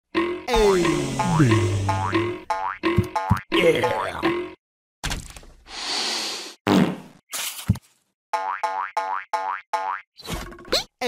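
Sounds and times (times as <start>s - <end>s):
cartoon boing spring: 0.2s - 4.3s.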